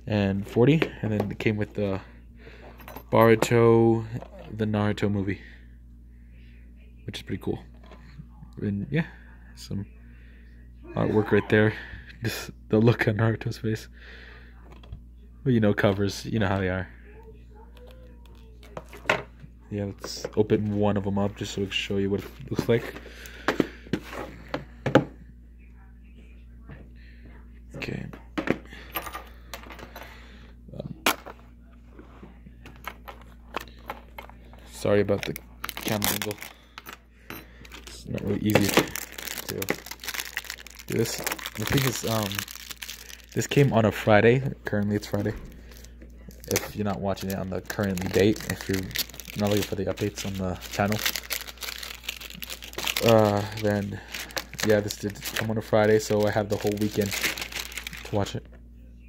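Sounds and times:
plastic wrap crinkling and tearing: 0:35.0 - 0:36.6, 0:37.7 - 0:44.0, 0:44.6 - 0:58.4.

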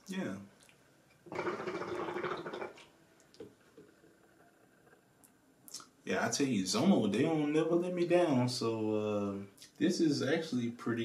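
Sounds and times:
hookah water bubbling: 0:00.5 - 0:05.9.

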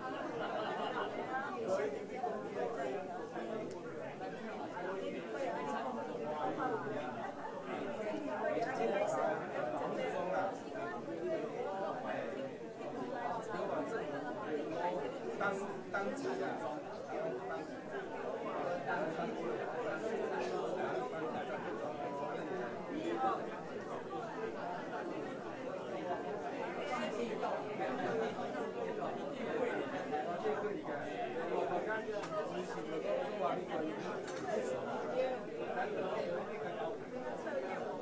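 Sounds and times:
indistinct chatter of many people: 0:00.0 - 0:38.0.

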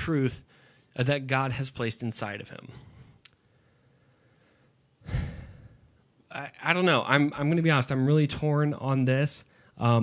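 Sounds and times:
man sighing into microphone: 0:05.0 - 0:05.9.

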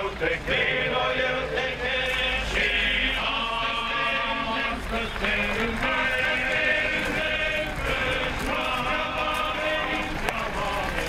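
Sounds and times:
crowd singing a hymn: 0:00.0 - 0:11.0
footsteps on gravel: 0:00.0 - 0:11.0.

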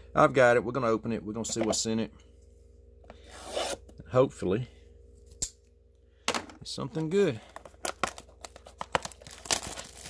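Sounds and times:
hand rubbing shrink-wrapped box: 0:07.6 - 0:10.0.

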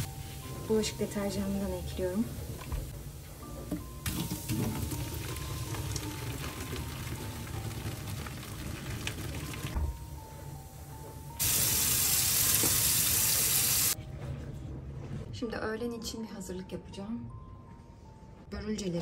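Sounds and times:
foaming drain cleaner fizzing: 0:04.0 - 0:09.8, 0:11.4 - 0:14.0
water pouring into a steel sink: 0:04.0 - 0:09.8
tap running hard: 0:11.4 - 0:13.6.

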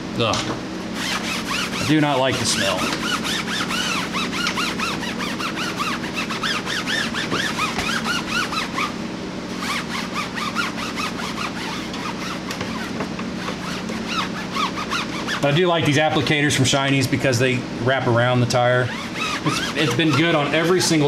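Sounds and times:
foam applicator squeaking on rubber: 0:01.0 - 0:09.0, 0:09.6 - 0:15.6, 0:18.7 - 0:21.0.

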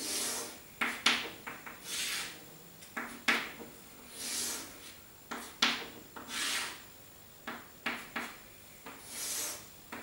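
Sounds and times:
chalk drawing on blackboard: 0:00.0 - 0:02.4, 0:04.1 - 0:06.8, 0:07.9 - 0:09.7.

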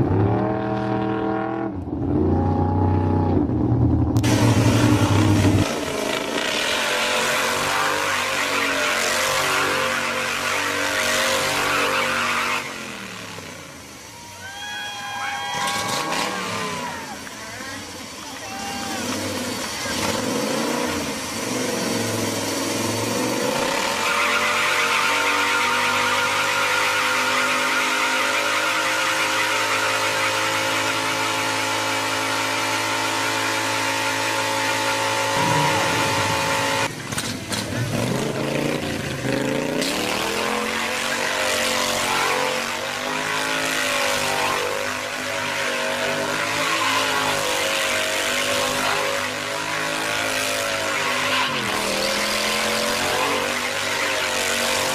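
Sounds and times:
vehicle engine running hard: 0:00.0 - 0:11.6, 0:15.4 - 0:24.6, 0:25.4 - 0:54.9.

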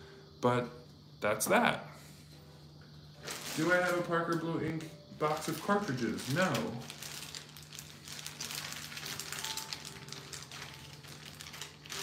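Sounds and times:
faint steady hum: 0:00.0 - 0:12.0.

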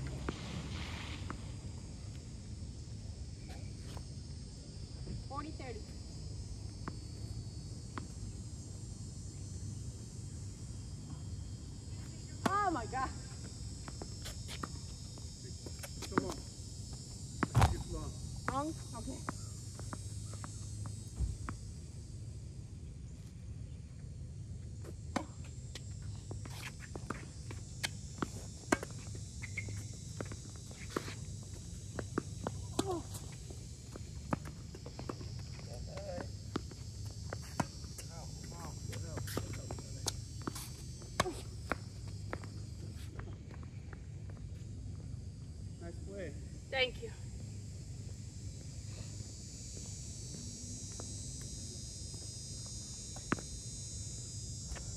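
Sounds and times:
high-pitched insect chorus: 0:00.0 - 0:54.9
shoe steps on court: 0:17.4 - 0:17.9
footsteps on court: 0:24.8 - 0:44.7.

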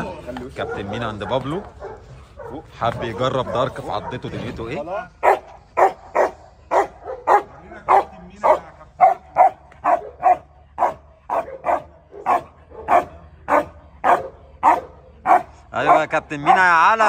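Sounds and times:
dog barking: 0:00.5 - 0:04.6, 0:05.2 - 0:17.0.

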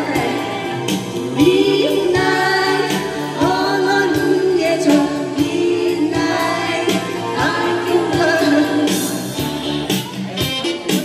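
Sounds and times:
woman singing into a microphone: 0:00.0 - 0:09.5
karaoke backing track: 0:00.0 - 0:11.0.

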